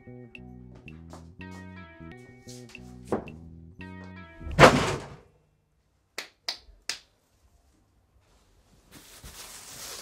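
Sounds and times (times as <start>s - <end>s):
loud thump: 4.5s - 5.2s
finger snaps: 6.2s - 7.1s.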